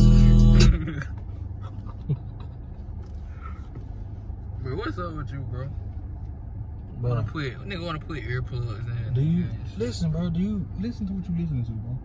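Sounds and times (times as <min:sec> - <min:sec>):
low rumble inside car cabin: 0:00.0 - 0:12.0.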